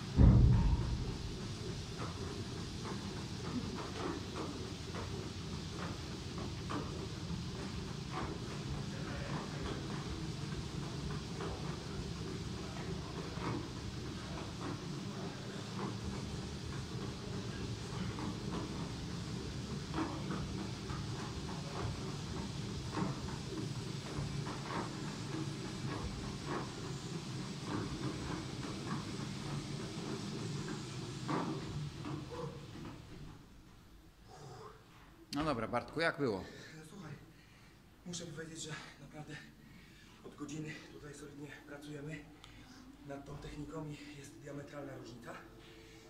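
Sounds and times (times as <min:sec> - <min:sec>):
feet knocking on treadmill: 0:00.0 - 0:34.0
treadmill rumbling and clattering: 0:00.0 - 0:42.4, 0:43.0 - 0:46.0.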